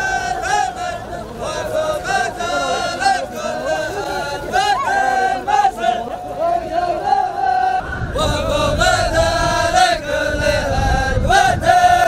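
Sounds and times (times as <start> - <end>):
crowd noise: 0.0 - 12.0
men chanting in unison: 0.0 - 12.0.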